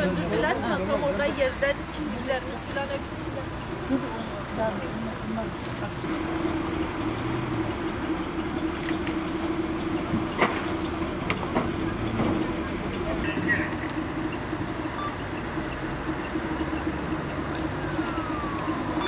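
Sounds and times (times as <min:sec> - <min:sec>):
fire engine motor droning: 0:05.1 - 0:19.0
sharp clicks and knocks: 0:08.8 - 0:12.4.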